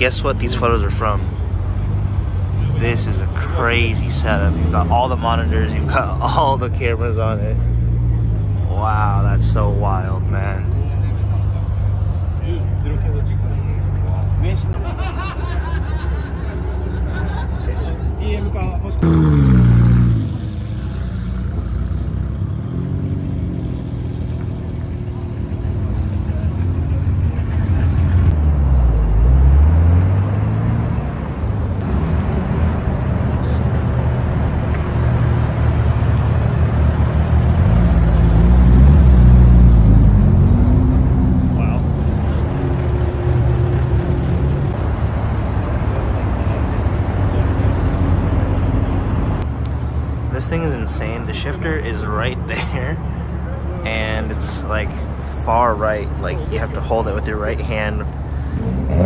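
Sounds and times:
car engine revving: 0.0 - 12.1, 18.8 - 49.5, 53.9 - 59.0.

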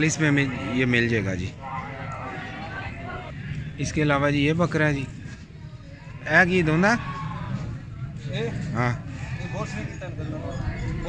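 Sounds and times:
men's voices: 0.0 - 11.0
goat bleating: 9.0 - 10.0.

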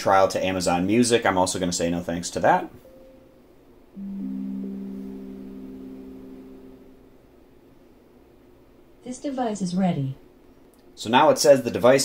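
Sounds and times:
soft rising three-note chime: 4.0 - 7.2.

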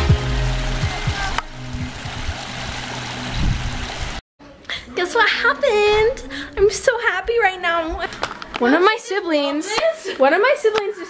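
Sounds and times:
electronic music: 0.0 - 3.2
mountain stream rushing: 0.0 - 4.2.

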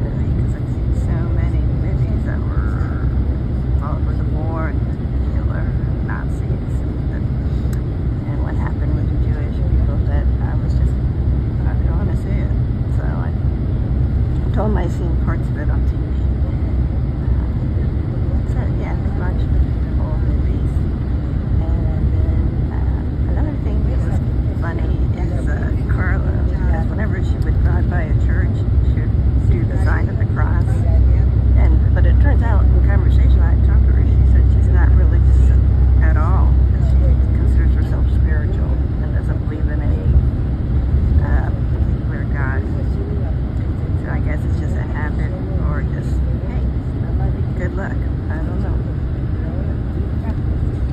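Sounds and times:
road and engine rumble inside vehicle: 0.0 - 50.9.

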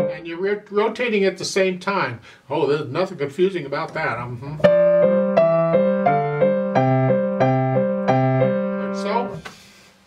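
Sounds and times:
grand piano playing intervals: 0.0 - 0.4, 4.6 - 9.4.

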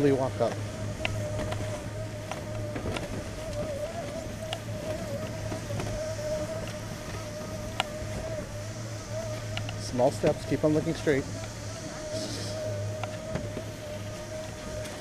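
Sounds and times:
conveyor lift humming: 0.0 - 15.0
wavering whine: 0.0 - 15.0.

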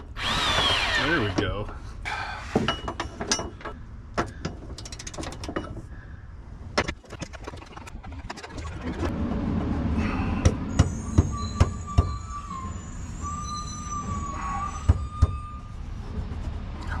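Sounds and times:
steady low rumble: 7.6 - 11.6
thin wavering high tone: 10.1 - 16.1.

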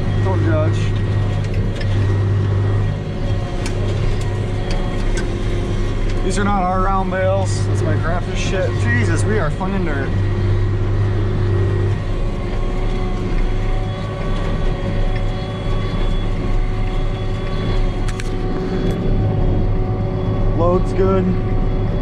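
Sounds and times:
tractor engine running under load: 0.0 - 22.0.

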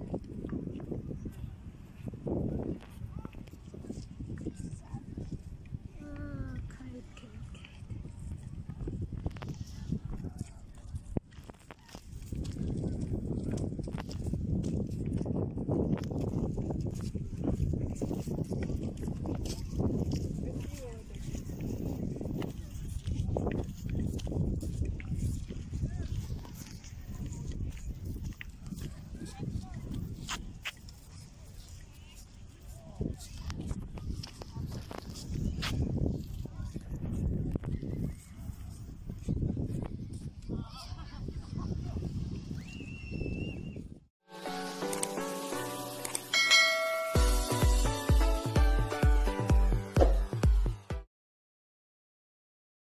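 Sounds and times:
background music: 44.3 - 51.0
notification bell chime: 46.3 - 48.1.

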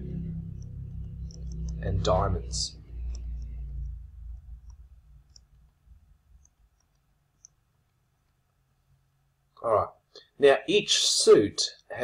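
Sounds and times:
low rumble: 0.0 - 6.2
stylus tapping on tablet screen: 0.6 - 8.5.

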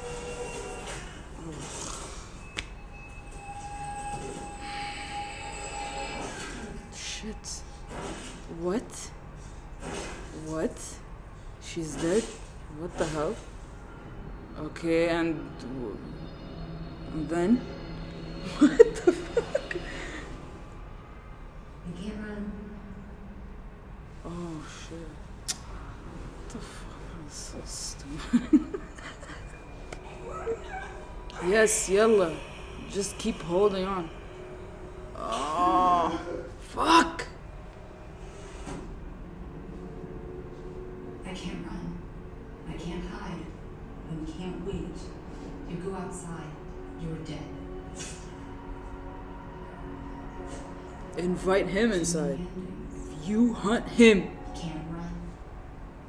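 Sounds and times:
faint whimpering cries: 29.0 - 31.5.

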